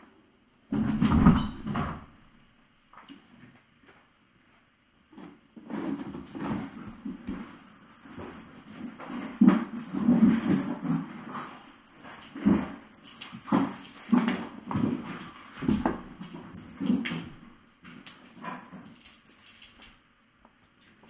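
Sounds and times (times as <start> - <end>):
rapid high-pitched pulsing: 6.7 - 14.2, 16.6 - 17.1, 18.4 - 19.8.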